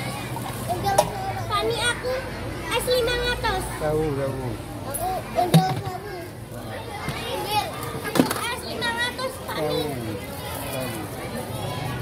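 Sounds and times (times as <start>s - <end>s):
children chattering and calling out: 0.0s - 12.0s.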